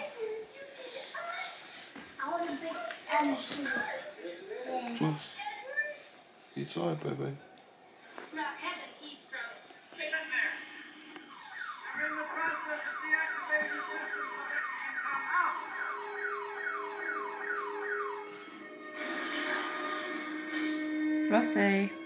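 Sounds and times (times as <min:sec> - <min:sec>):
electronic falling siren whoops: 0:11.3 - 0:18.6.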